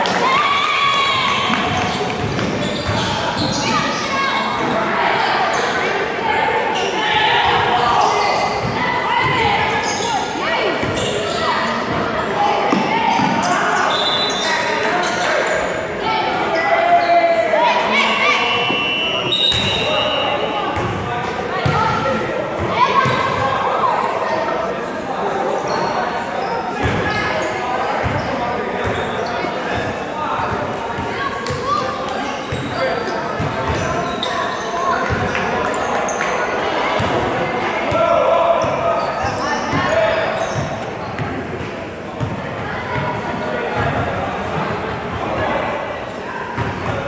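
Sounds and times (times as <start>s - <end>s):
shouting and chatter: 0.0s - 47.0s.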